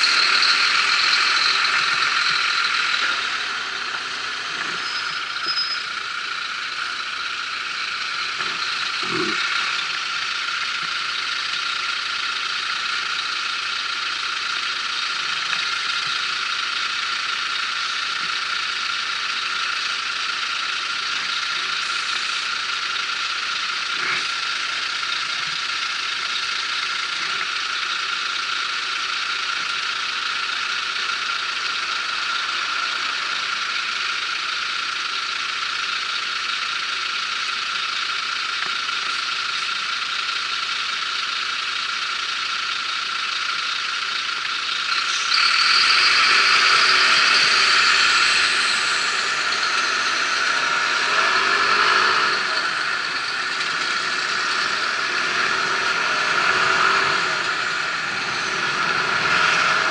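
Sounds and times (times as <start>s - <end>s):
scooter engine idling: 0.0s - 59.9s.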